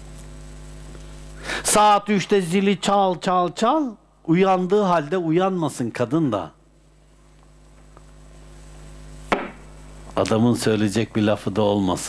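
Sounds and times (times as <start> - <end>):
faint steady hum: 0.0 - 12.0
sharp knock: 9.3 - 9.7.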